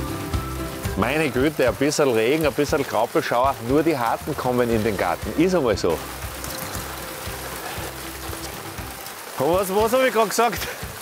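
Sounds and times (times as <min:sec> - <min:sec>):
light rain and graupel hissing: 0:00.0 - 0:11.0
quiet background music: 0:00.0 - 0:11.0.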